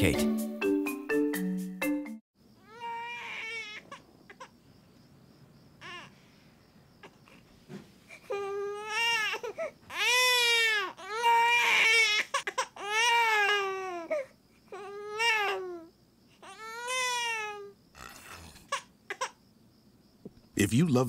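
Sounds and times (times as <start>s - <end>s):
baby crying: 2.6s - 4.5s, 5.8s - 6.1s, 8.2s - 19.4s.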